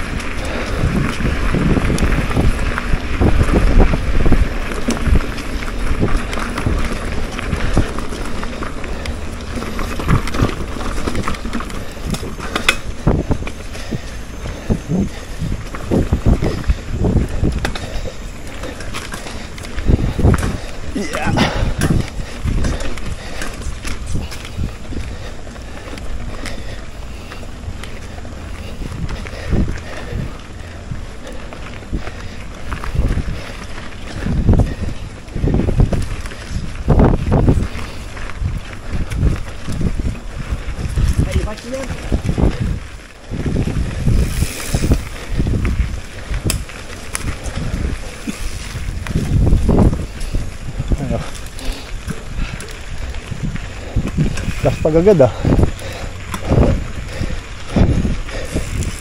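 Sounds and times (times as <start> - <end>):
bike rolling on dirt trail: 0.0 - 59.0
wind buffeting microphone: 0.0 - 59.0.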